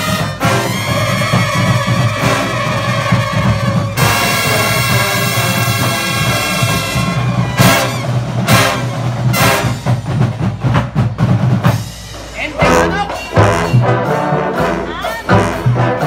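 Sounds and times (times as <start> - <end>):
brass chords: 0.0 - 10.4, 11.6 - 16.0.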